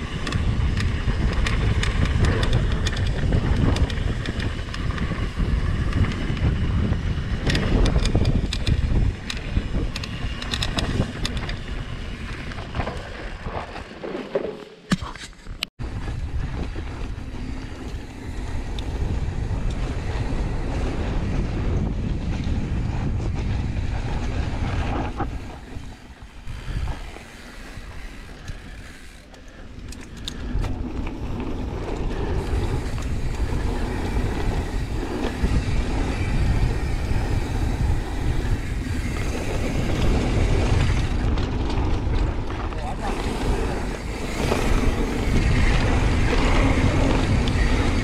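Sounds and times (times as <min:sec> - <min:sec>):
wind rushing over microphone: 0:00.0 - 0:14.0, 0:15.5 - 0:48.0
bike rattling: 0:00.0 - 0:48.0
tyres rolling on dirt: 0:15.8 - 0:48.0.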